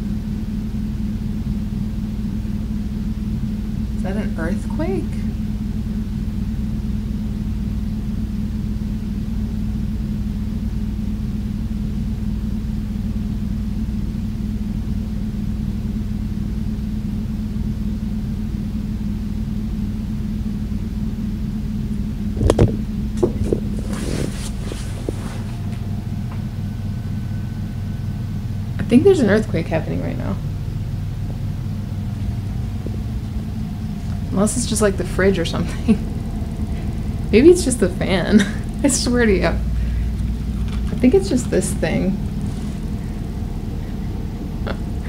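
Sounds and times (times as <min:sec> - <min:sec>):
air conditioner rumble and hum: 0:00.0 - 0:45.0.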